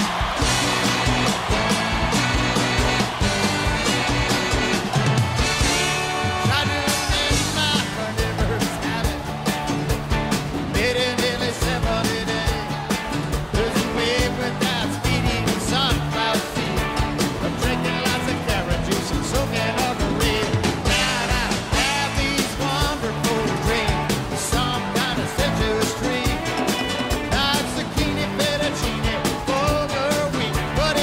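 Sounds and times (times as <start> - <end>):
live rock band playing: 0.0 - 31.0
steady drum beat: 0.0 - 31.0.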